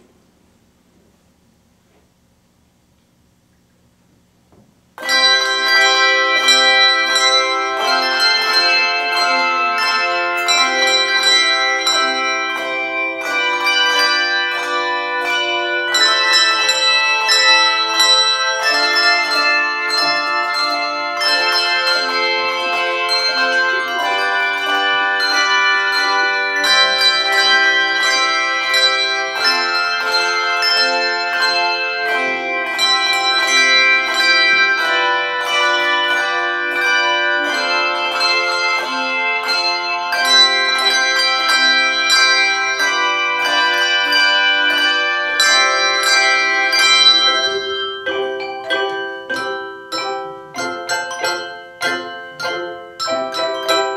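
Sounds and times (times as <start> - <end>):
handbells ringing: 5.0 - 53.9.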